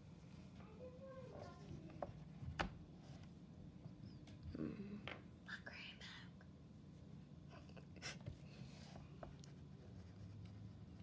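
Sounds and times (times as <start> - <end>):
faint whispering: 4.6 - 6.4.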